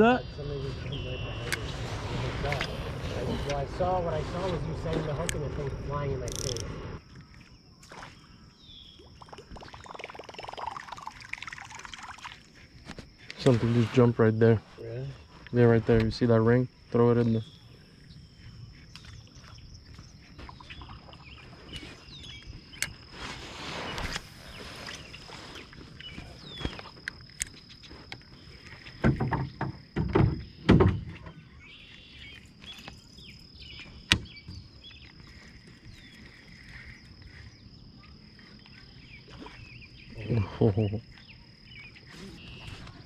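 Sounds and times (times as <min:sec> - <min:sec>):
high insect trill: 0:00.0 - 0:43.0.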